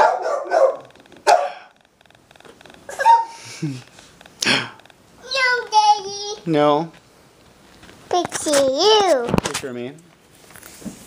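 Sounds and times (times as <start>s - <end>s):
toddler shouting: 5.2s - 6.4s.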